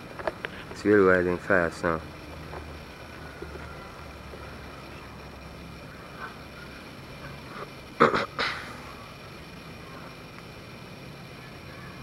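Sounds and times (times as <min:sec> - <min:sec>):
faint high chirps: 0:02.8 - 0:07.7, 0:08.7 - 0:12.0.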